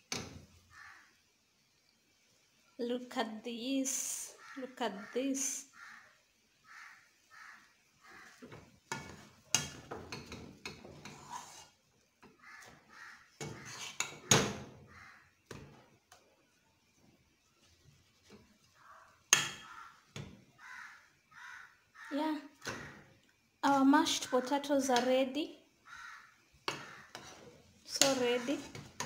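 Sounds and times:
utensil mashing potatoes in pot: 8.2s - 12.4s, 13.4s - 14.4s, 26.6s - 29.0s.

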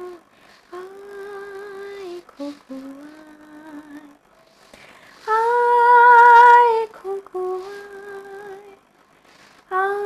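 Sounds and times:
woman singing unaccompanied: 0.0s - 4.2s, 5.0s - 8.9s, 9.6s - 10.0s.

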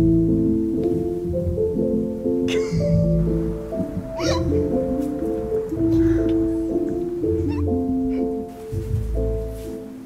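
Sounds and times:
keyboard notes over low bass: 0.0s - 10.0s
high wavering gliding sound: 2.5s - 8.5s.

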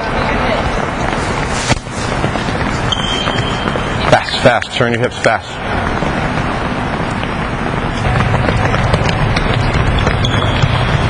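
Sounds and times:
feet shuffling on gym floor: 0.2s - 11.0s
short high squeak: 2.9s - 3.9s.

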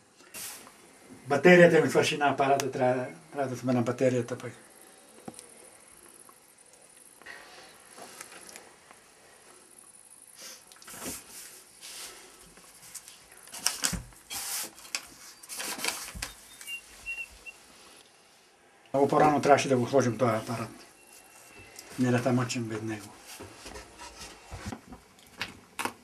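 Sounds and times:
faint high beeps: 16.3s - 17.6s, 19.9s - 21.9s.

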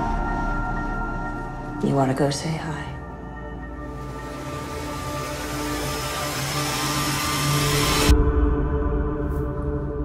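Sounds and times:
low drone: 0.0s - 10.0s
rushing noise riser: 3.7s - 8.1s.

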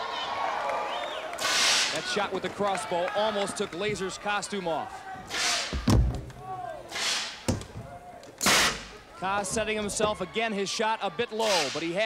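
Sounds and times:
compressed air blasts: 1.4s - 2.0s, 6.9s - 7.6s, 8.4s - 9.0s
heavy thump: 5.7s - 6.4s.

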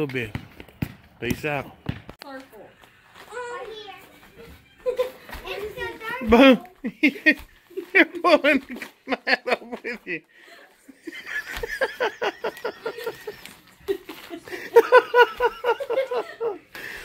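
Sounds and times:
people laughing: 4.8s - 5.6s, 6.3s - 17.0s
people talking: 5.3s - 7.4s.

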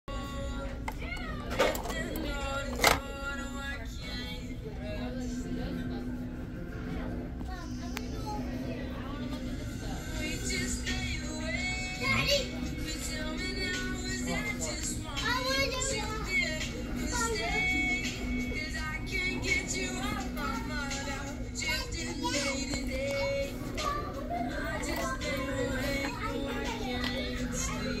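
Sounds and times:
background music with held tones: 0.1s - 28.0s
indistinct childlike voices: 19.2s - 28.0s.

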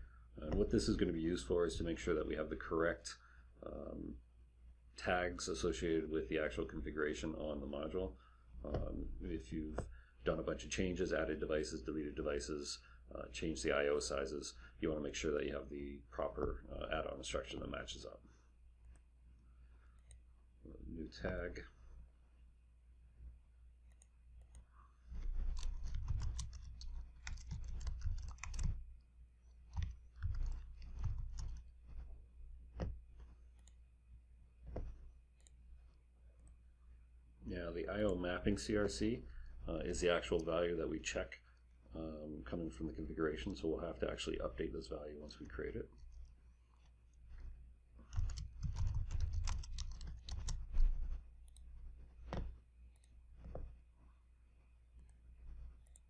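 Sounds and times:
typing on computer keyboard: 25.4s - 28.8s, 29.7s - 31.6s, 48.1s - 50.6s.

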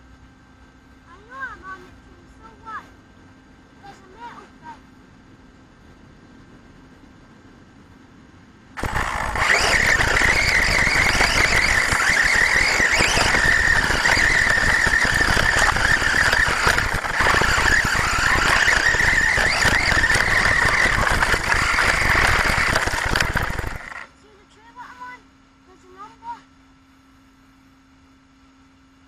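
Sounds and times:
toy truck motor high whine: 8.8s - 24.1s.

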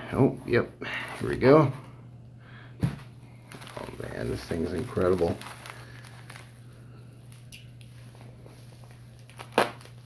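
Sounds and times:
bubble wrap crinkling: 3.4s - 10.0s.

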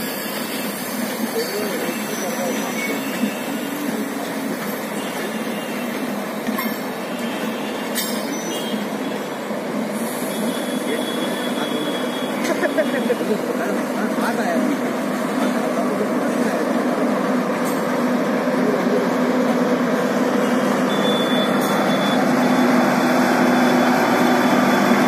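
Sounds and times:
train wheels rumbling on track: 0.0s - 25.0s.

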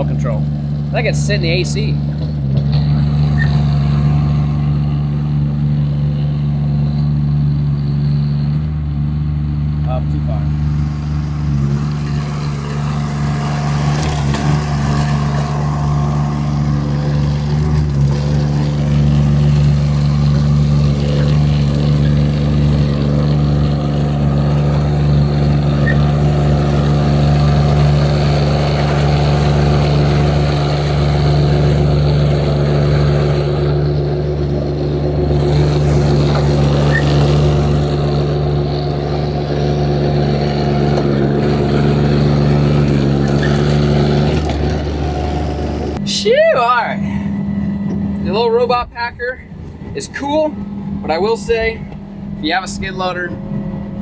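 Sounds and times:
diesel engine droning: 0.0s - 54.0s.

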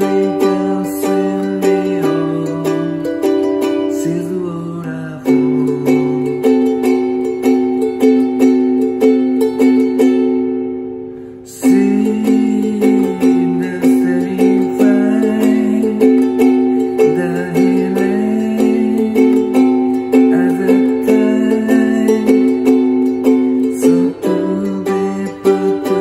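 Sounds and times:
ukulele playing: 0.0s - 26.0s.

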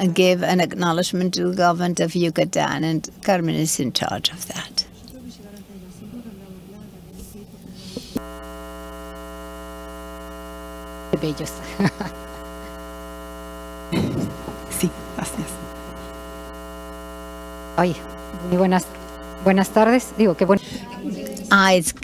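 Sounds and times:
electrical mains hum: 0.0s - 22.0s.

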